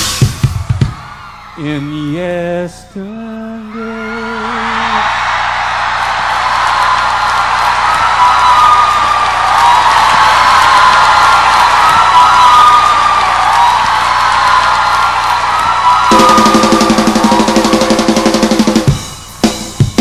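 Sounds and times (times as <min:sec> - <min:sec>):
crowd cheering and applauding: 0:00.0 - 0:02.3, 0:03.7 - 0:20.0
high voices screaming: 0:03.7 - 0:19.1.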